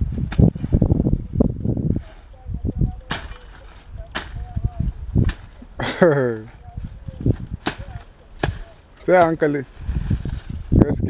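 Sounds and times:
voices talking: 0:00.5 - 0:09.8.

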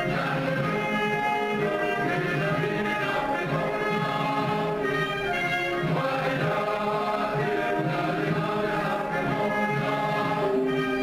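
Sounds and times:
choir singing sustained notes: 0:00.0 - 0:11.0
orchestral music: 0:00.0 - 0:11.0.

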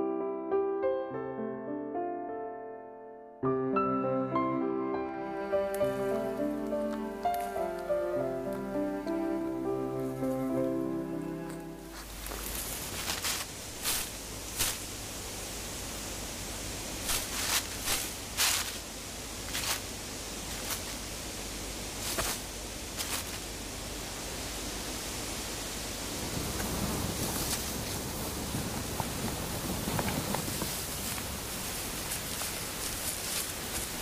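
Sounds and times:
microphone hiss: 0:03.7 - 0:34.0
short sharp rustles: 0:11.9 - 0:15.0, 0:17.0 - 0:18.9, 0:19.5 - 0:21.0, 0:22.0 - 0:23.5.

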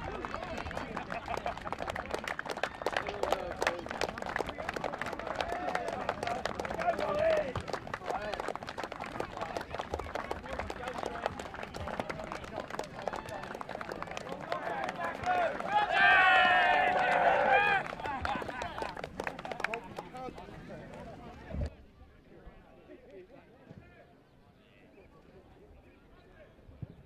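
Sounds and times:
group clapping: 0:00.0 - 0:21.4.

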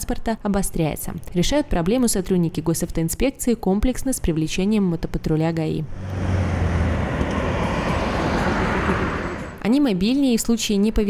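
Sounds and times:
motorcycle passing at speed: 0:05.9 - 0:09.7.

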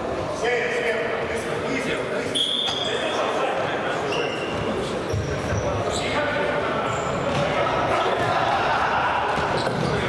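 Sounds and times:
spectators' voices: 0:00.0 - 0:10.0
shoes squeaking on court floor: 0:02.4 - 0:03.2, 0:03.9 - 0:07.5, 0:09.4 - 0:10.0
players shouting: 0:07.4 - 0:10.0.

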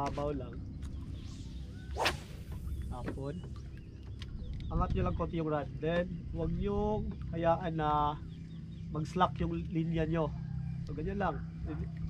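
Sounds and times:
fishing rod swishing through air: 0:00.9 - 0:03.2.

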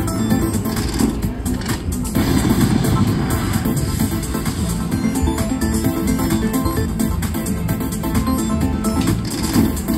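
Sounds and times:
slot machine electronic music: 0:00.0 - 0:09.9
slot machine reels spinning: 0:08.3 - 0:09.9.

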